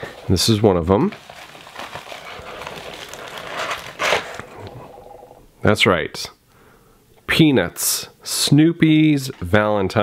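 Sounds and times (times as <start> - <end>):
packing material crinkling: 0.0 - 5.2.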